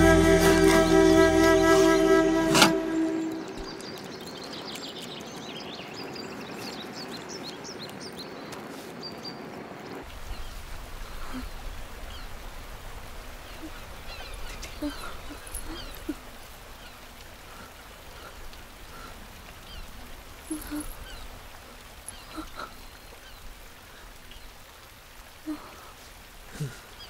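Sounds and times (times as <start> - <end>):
low steady rumble: 0.0 - 3.8
animal and bird calls: 13.3 - 21.3.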